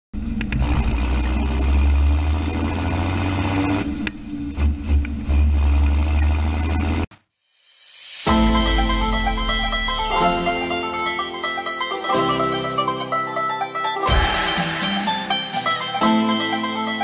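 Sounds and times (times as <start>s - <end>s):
loud vehicle engine running: 0.2s - 7.1s.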